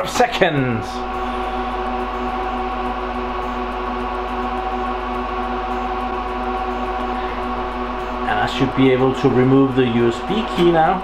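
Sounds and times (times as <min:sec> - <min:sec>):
server cooling fans running: 0:00.0 - 0:11.0.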